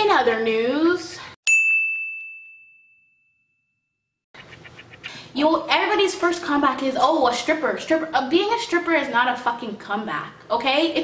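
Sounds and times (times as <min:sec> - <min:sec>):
high bell-like ding: 0:01.5 - 0:03.9.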